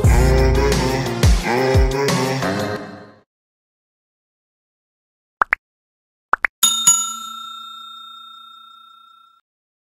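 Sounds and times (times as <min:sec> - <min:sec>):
notification bell chime: 0:06.6 - 0:09.4.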